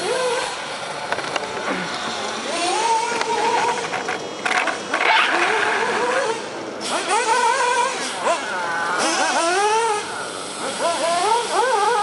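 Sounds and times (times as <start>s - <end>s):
small nitro engine revving: 0.0s - 0.9s, 1.5s - 12.0s.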